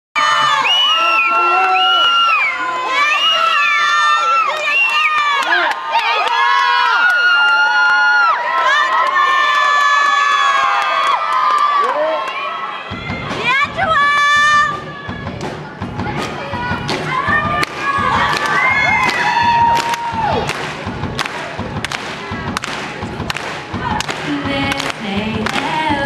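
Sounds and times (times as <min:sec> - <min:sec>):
children screaming and cheering: 0:00.2 - 0:15.3, 0:16.0 - 0:20.5.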